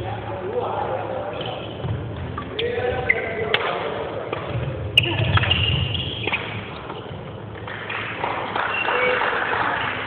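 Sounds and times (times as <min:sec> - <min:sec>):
voices chattering in echoing hall: 0:00.0 - 0:10.0
shoes squeaking on floor: 0:01.3 - 0:03.5, 0:04.5 - 0:07.4
racket striking shuttlecock: 0:03.5 - 0:07.0.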